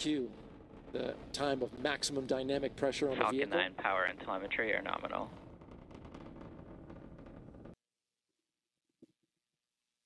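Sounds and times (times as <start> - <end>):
rocket engines rumbling and crackling: 0.0 - 7.8.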